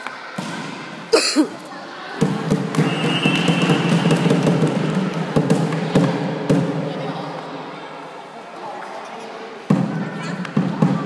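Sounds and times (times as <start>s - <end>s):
children's voices echoing: 0.0s - 2.7s, 5.1s - 11.0s.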